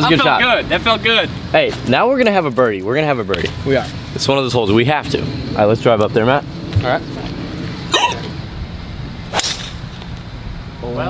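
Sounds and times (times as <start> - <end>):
low hum: 2.8 - 11.0
golf club striking ball: 9.3 - 10.2.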